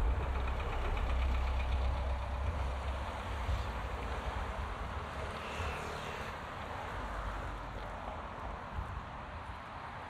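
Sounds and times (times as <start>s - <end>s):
bus engine droning: 0.0s - 5.4s
road traffic: 0.0s - 10.0s.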